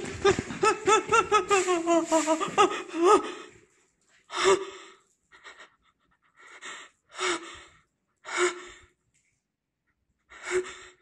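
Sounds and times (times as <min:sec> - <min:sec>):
person breathing: 0:01.4 - 0:09.0, 0:10.2 - 0:11.0.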